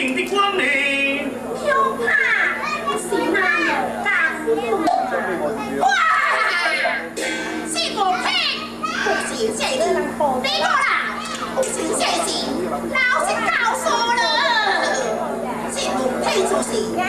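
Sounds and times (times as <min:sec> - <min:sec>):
steady low hum: 0:00.0 - 0:17.0
stylized high-pitched stage speech: 0:00.0 - 0:17.0.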